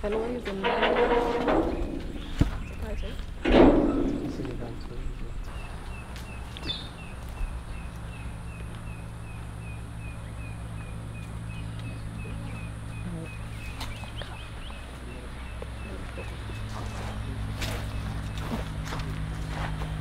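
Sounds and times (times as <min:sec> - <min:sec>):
low outdoor rumble: 0:00.0 - 0:20.0.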